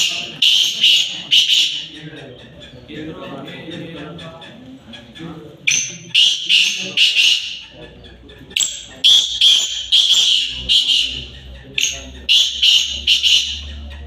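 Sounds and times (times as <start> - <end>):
francolins calling: 0.0 - 14.0.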